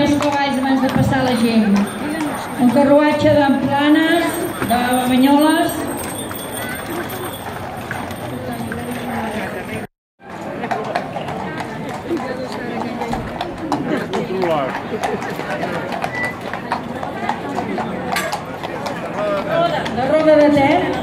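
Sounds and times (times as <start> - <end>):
crowd chattering: 0.0 - 21.0
horse hooves on pavement: 0.0 - 21.0.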